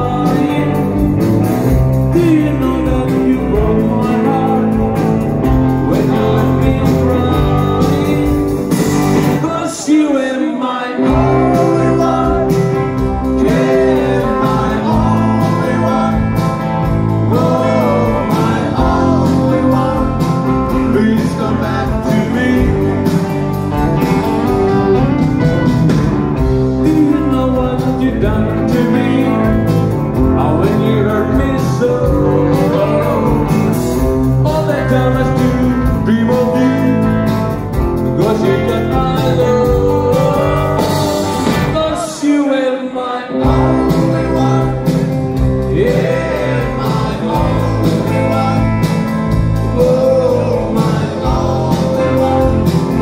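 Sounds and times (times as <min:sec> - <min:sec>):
bass guitar: 0:00.0 - 0:09.7, 0:11.0 - 0:42.2, 0:43.4 - 0:53.0
person singing: 0:00.0 - 0:25.7, 0:26.4 - 0:53.0
drums: 0:00.0 - 0:42.5, 0:43.3 - 0:53.0
electric guitars: 0:00.0 - 0:53.0.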